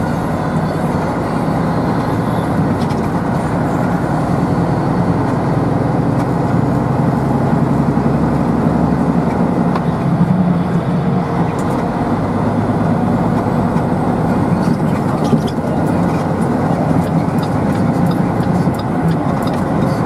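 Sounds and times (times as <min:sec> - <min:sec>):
road noise: 0:00.0 - 0:20.0
vehicle engine drone: 0:00.0 - 0:20.0.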